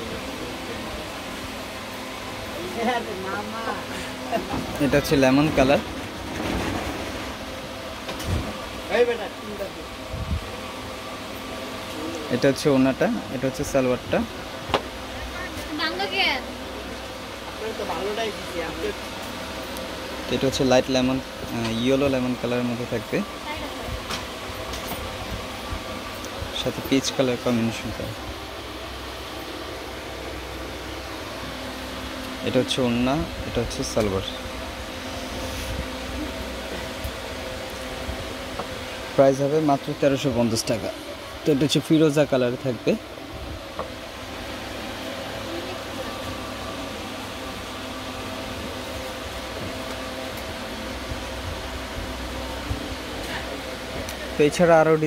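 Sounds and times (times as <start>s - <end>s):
fan whirring: 0.0s - 55.0s.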